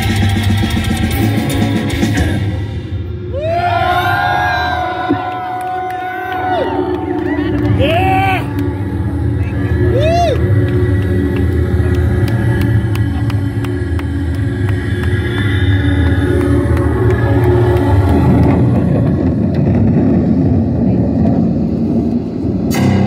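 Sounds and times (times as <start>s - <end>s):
sharp loud hit: 22.7s - 23.0s.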